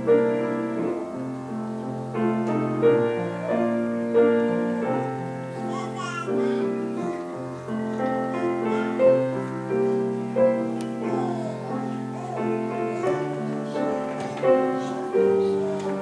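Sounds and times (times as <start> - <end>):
slow piano piece: 0.0 - 16.0.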